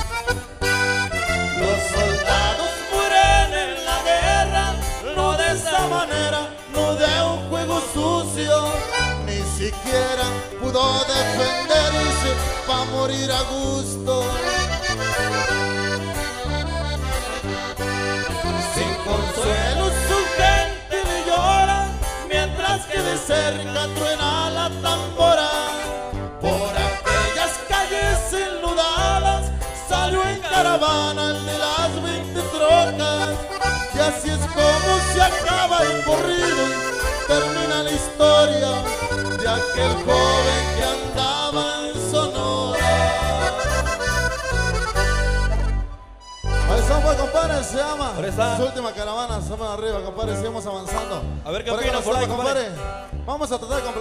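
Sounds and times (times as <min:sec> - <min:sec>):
accordion melody: 0:00.0 - 0:49.9
steady bass line: 0:00.0 - 0:54.0
person singing: 0:01.2 - 0:14.8, 0:18.3 - 0:44.4.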